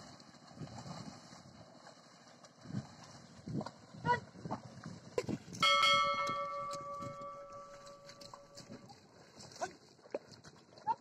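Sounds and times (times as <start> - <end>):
bell ringing: 5.6 - 8.6.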